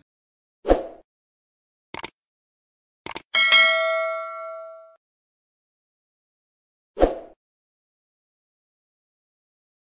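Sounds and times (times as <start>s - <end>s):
notification bell ding: 3.4s - 5.0s.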